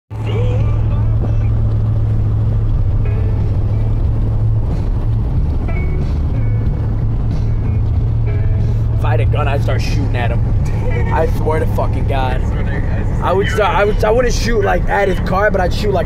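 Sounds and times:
engine and road noise drone: 0.1s - 16.0s.

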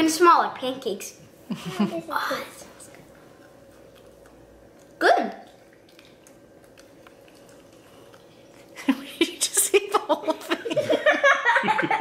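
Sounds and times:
low room hum: 0.0s - 12.0s
mouth sounds chewing: 2.8s - 9.7s.

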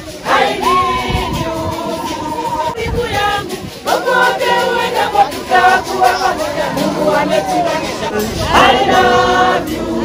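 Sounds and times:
choir singing: 0.0s - 10.0s.

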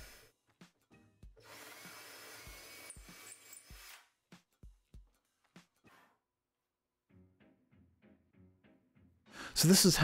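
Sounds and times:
background music beats: 0.0s - 6.0s
cordless drill boring into wood: 1.4s - 4.0s.

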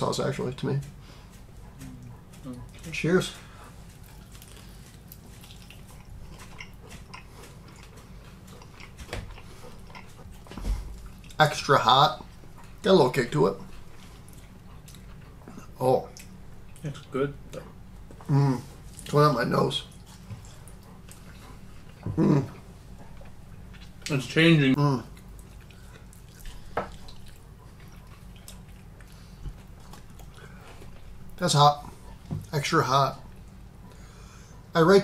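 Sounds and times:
low room hum: 0.0s - 35.0s
people chewing chicken wings: 0.2s - 34.8s
wet eating smacks and clicks: 0.5s - 12.9s, 13.6s - 19.2s, 19.8s - 22.1s, 25.1s - 33.6s.

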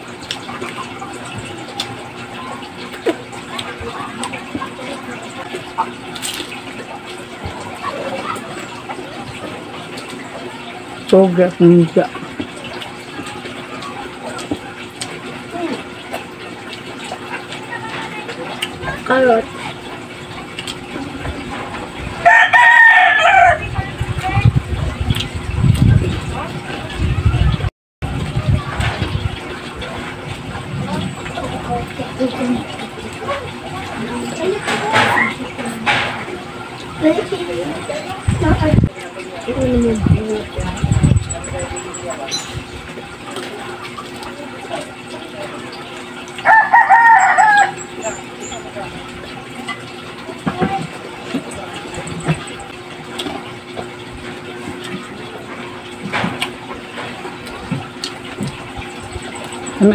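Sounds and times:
rooster crowing: 22.2s - 23.7s, 46.4s - 47.9s.

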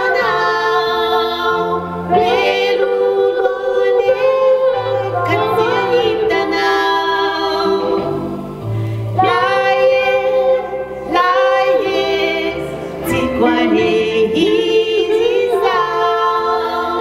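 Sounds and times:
woman and man singing gospel: 0.0s - 8.4s, 9.1s - 17.0s.

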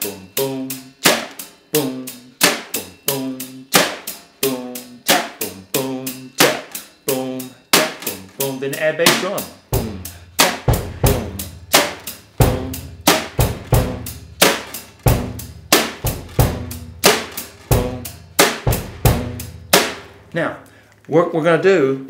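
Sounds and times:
hi-hat: 0.0s - 8.8s, 9.4s - 20.1s
snare drum: 1.0s - 1.5s, 2.4s - 5.6s, 6.4s - 6.9s, 7.8s - 20.2s
bass drum: 1.8s - 20.4s.

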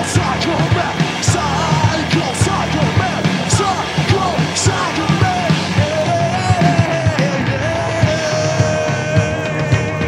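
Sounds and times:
drums with cymbal crashes: 0.0s - 10.0s
electric guitar and bass: 0.0s - 10.0s
person singing: 0.0s - 10.0s.

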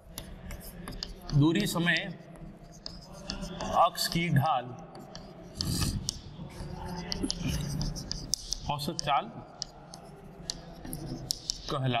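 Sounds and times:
chalk scratching on chalkboard: 0.0s - 12.0s.

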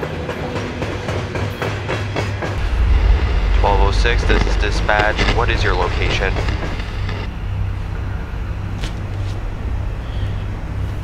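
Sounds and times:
locomotive engine rumble: 2.6s - 11.0s.

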